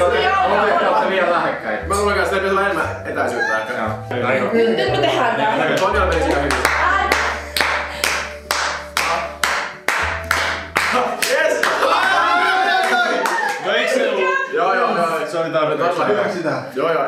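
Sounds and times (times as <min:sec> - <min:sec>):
hands clapping in a beat: 0:05.8 - 0:13.6.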